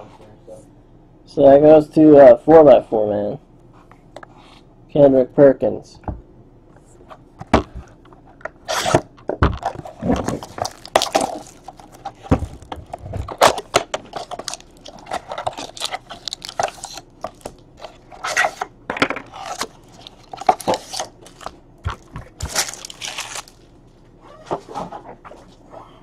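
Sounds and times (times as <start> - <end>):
plastic shrink-wrap crinkling: 9.6 - 18.7, 19.3 - 24.0.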